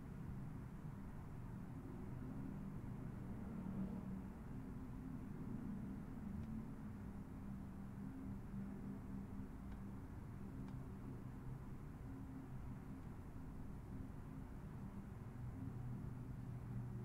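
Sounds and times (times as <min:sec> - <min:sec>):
low room hum: 0:00.0 - 0:17.0
faint clicks: 0:09.6 - 0:09.9, 0:10.6 - 0:10.9.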